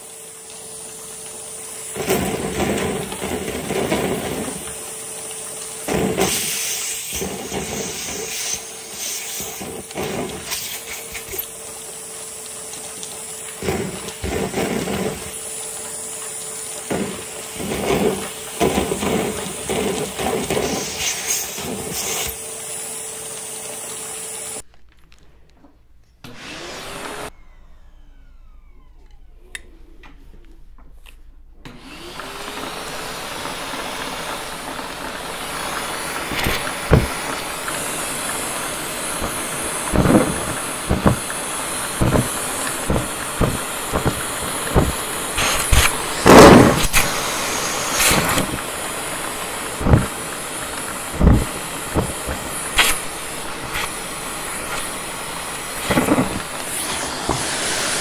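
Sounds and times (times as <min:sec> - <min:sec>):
vacuum cleaner motor whining: 0:00.0 - 0:24.7, 0:26.2 - 0:58.0.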